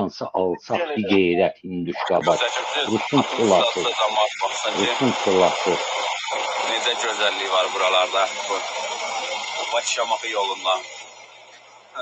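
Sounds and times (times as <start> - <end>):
man speaking: 0.0 - 5.8, 6.7 - 8.6, 9.8 - 10.8
steady hiss: 2.1 - 12.0.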